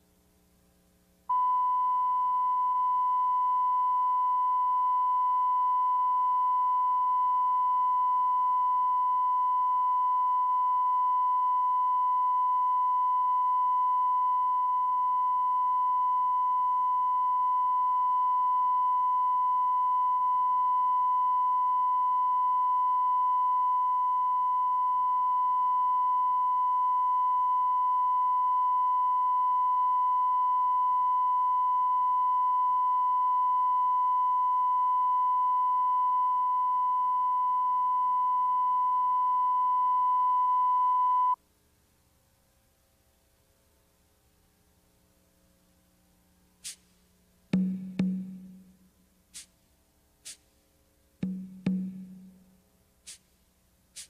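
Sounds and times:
steady electronic test tone: 1.3s - 41.4s, 47.6s - 48.7s, 51.2s - 52.5s.

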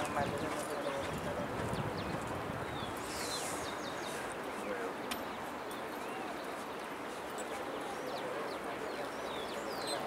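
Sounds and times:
background voices talking: 0.0s - 10.0s.

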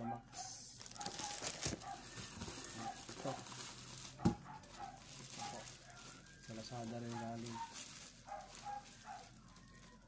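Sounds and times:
bubble wrap rustling: 0.5s - 10.0s.

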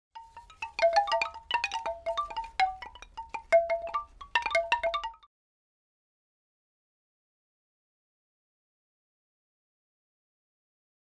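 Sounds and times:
chimes ringing: 0.2s - 5.2s.

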